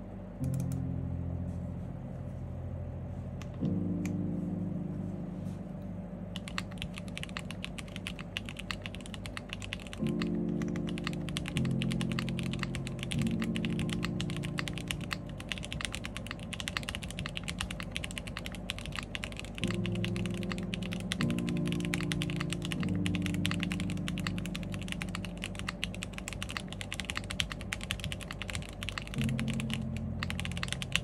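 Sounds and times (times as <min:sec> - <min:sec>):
soft background music: 0:00.0 - 0:31.0
mechanical keyboard typing: 0:00.4 - 0:00.8, 0:06.4 - 0:31.0.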